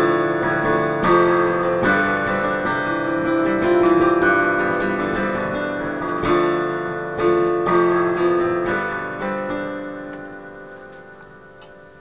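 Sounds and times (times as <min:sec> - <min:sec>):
piano chord ringing: 0:00.0 - 0:12.0.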